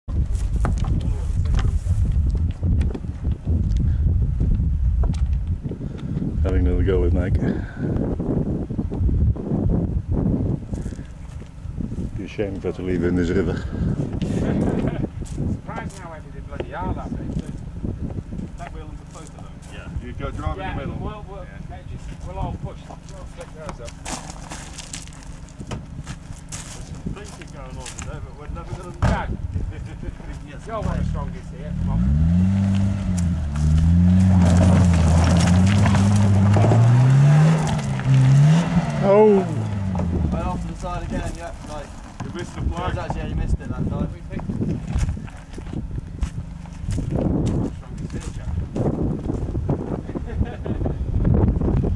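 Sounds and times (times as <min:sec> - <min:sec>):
wind buffeting microphone: 0:00.1 - 0:51.9
wheels spinning in gravel: 0:22.2 - 0:28.2, 0:32.7 - 0:38.4, 0:39.0 - 0:43.2
car engine revving hard: 0:30.9 - 0:40.8.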